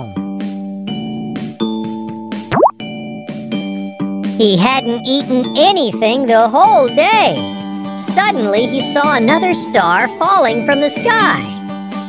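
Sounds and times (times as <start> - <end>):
rising cartoon swoop: 2.5 - 2.7
gentle children's music: 4.4 - 11.8.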